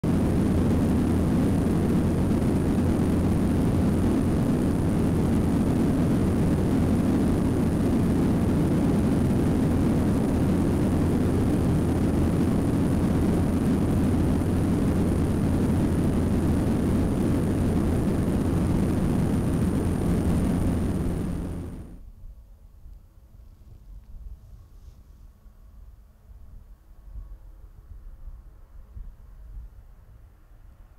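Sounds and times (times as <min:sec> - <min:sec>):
propeller aircraft engines droning: 0:00.0 - 0:22.0
faint high whine: 0:00.0 - 0:22.2.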